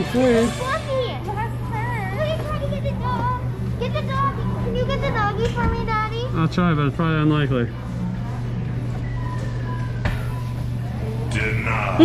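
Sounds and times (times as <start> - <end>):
machine low hum: 0.0 - 12.0.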